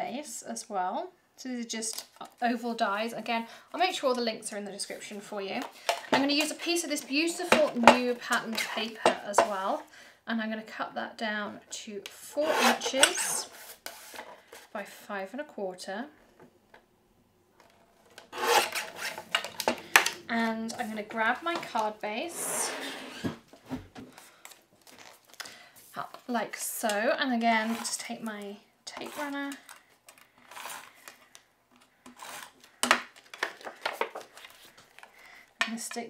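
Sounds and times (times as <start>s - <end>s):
tape runner on paper: 18.1s - 20.2s, 30.1s - 33.0s
paper trimmer blade cutting paper: 18.3s - 20.2s
paper handling noise: 23.2s - 26.3s, 29.0s - 35.4s.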